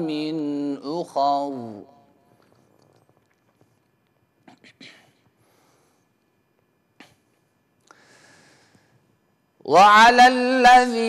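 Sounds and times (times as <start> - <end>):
mouth clicks: 2.4 - 4.8
short in-breath: 7.9 - 9.0.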